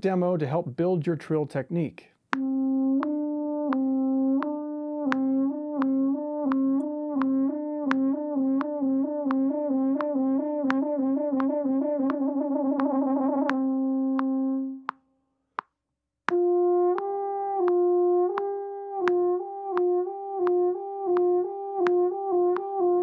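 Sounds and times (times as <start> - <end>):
french horn lip trill: 2.4 - 14.9, 16.3 - 23.0.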